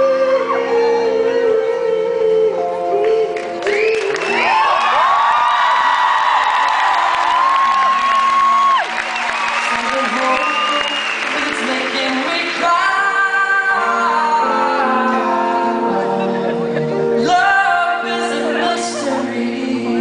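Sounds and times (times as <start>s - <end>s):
man singing wordless high notes: 0.0s - 4.8s, 9.6s - 20.0s.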